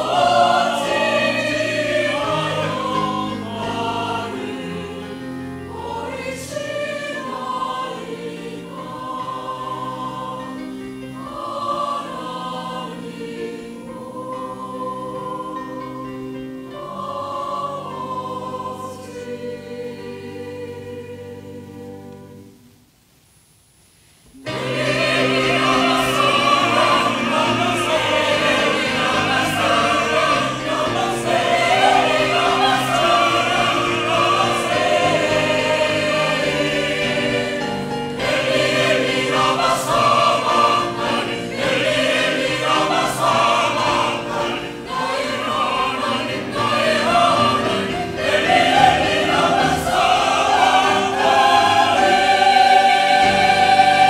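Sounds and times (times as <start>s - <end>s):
mixed choir singing: 0.0s - 22.6s, 24.3s - 54.0s.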